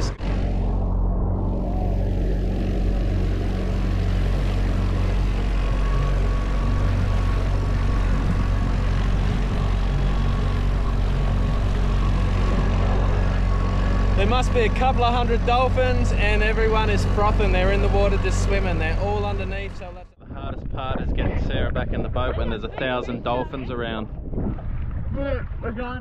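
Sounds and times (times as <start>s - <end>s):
wind and water rushing: 0.0s - 19.4s
outboard motor droning: 0.0s - 20.2s.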